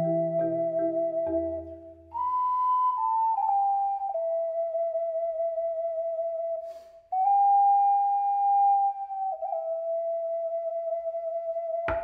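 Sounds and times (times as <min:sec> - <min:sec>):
ocarina playing: 0:00.0 - 0:12.0.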